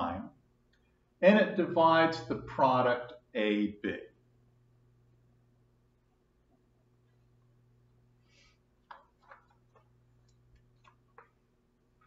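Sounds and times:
low room hum: 0:00.0 - 0:12.0
faint clicks and taps: 0:08.8 - 0:12.0.

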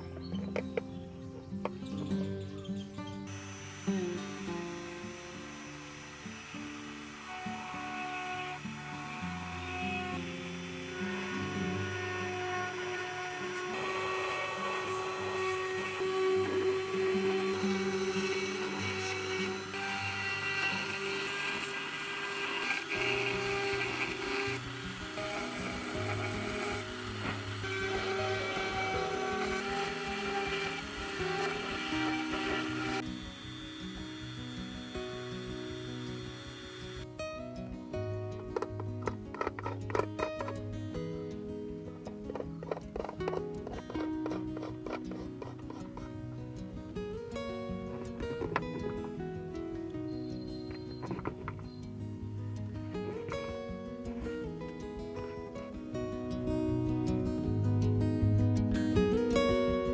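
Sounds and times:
rotary engraving tool cutting: 0:03.3 - 0:37.1, 0:42.3 - 0:46.1
background music: 0:06.9 - 0:59.9.

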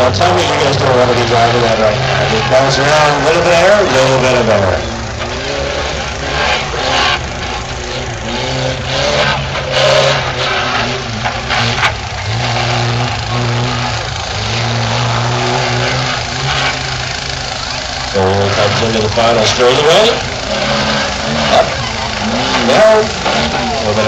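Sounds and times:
off-road vehicle engine revving: 0:00.0 - 0:24.0.

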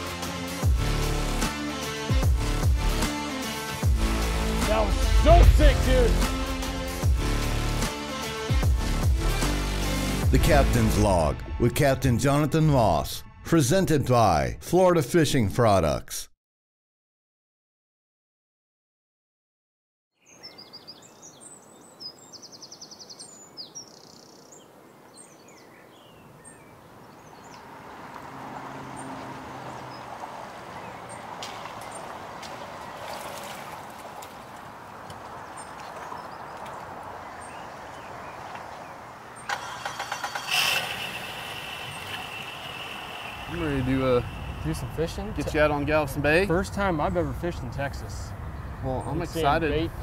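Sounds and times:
birds chirping: 0:20.2 - 0:50.0
vehicle rumble: 0:27.0 - 0:50.0
outboard engine whining: 0:39.3 - 0:48.1.

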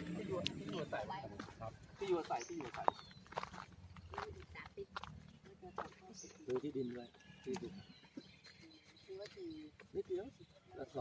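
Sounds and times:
people talking: 0:00.0 - 0:03.1, 0:04.1 - 0:07.8.

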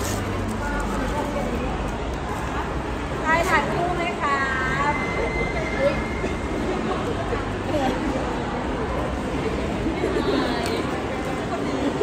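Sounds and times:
faint scattered voices: 0:00.0 - 0:12.0.

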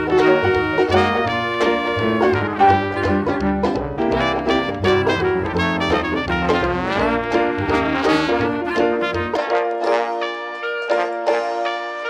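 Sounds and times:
jazz band playing blues: 0:00.0 - 0:12.0
trombone: 0:00.0 - 0:12.0
trumpet: 0:00.0 - 0:12.0
upright bass: 0:00.0 - 0:12.0.

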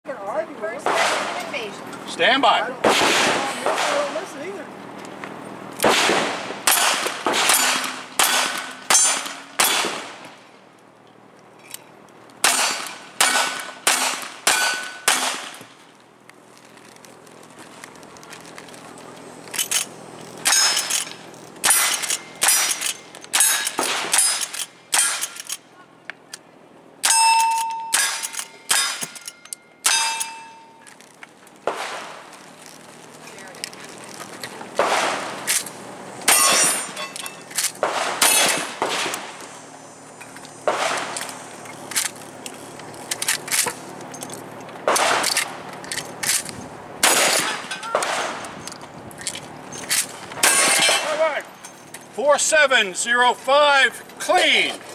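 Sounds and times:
rifle shots: 0:00.8 - 0:01.4, 0:02.8 - 0:04.2, 0:05.8 - 0:10.3, 0:12.4 - 0:15.6, 0:20.4 - 0:25.5, 0:31.6 - 0:32.3, 0:34.8 - 0:35.6, 0:37.8 - 0:39.4, 0:40.6 - 0:41.4, 0:44.8 - 0:45.6, 0:47.0 - 0:48.5
shotgun shots: 0:00.8 - 0:01.4, 0:02.8 - 0:04.3, 0:05.8 - 0:10.4, 0:12.4 - 0:15.7, 0:21.6 - 0:25.5, 0:31.6 - 0:32.3, 0:34.8 - 0:35.6, 0:37.8 - 0:39.4, 0:40.6 - 0:41.4, 0:44.8 - 0:45.5, 0:47.0 - 0:48.5
steel targets ringing: 0:06.7 - 0:09.8, 0:12.5 - 0:15.3, 0:20.4 - 0:25.4, 0:27.0 - 0:30.9, 0:36.3 - 0:37.5.

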